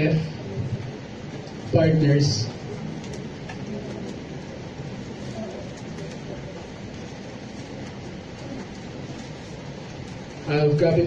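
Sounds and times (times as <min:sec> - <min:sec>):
low rumbling hiss: 0:00.0 - 0:11.0.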